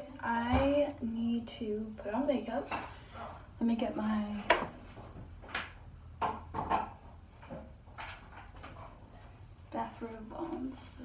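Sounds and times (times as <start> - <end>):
household objects knocking: 6.2 - 7.6.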